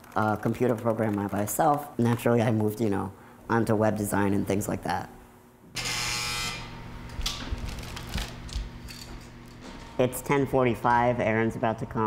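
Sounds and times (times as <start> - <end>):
intercom buzzing: 5.8 - 7.0.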